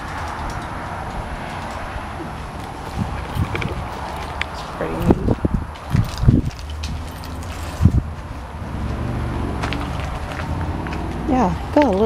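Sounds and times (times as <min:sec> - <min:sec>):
steady low rumble: 0:00.0 - 0:12.0
handheld camera bumps and rubbing: 0:02.5 - 0:08.2.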